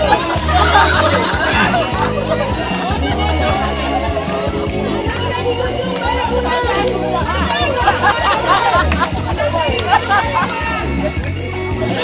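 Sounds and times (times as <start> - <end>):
crowd of voices chattering: 0.0 - 12.0
music with sustained bass notes: 0.0 - 12.0.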